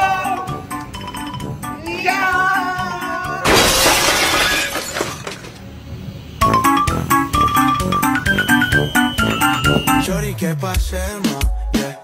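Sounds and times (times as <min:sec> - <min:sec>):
background music: 0:00.0 - 0:03.8, 0:06.4 - 0:12.0.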